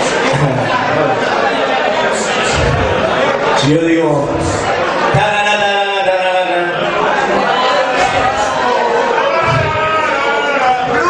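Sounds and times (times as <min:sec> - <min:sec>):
audience chattering: 0:00.0 - 0:11.0
man's voice: 0:02.5 - 0:07.2.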